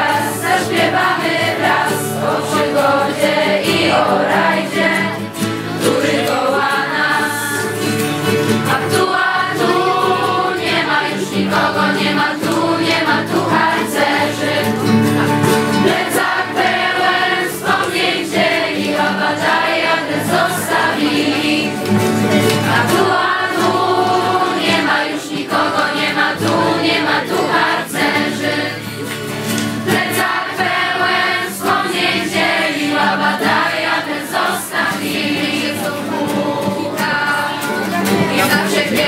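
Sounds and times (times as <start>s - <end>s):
young voices singing in unison: 0.0s - 29.0s, 29.8s - 39.0s
strummed acoustic guitar: 0.0s - 39.0s.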